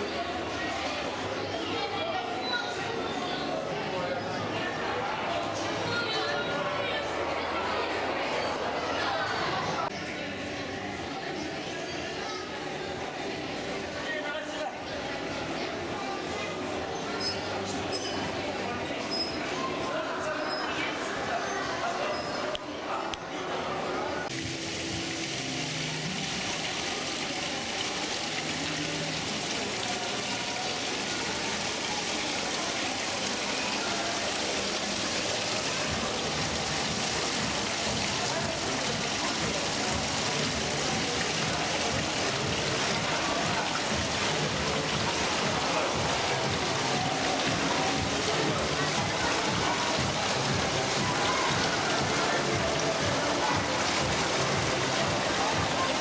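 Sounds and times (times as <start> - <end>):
indistinct voices: 0.0 - 56.0
running water: 0.0 - 56.0
music: 35.6 - 56.0.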